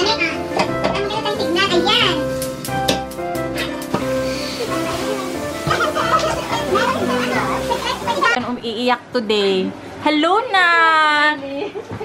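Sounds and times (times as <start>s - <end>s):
background music: 0.0s - 8.4s
excited voices chattering: 4.6s - 8.4s.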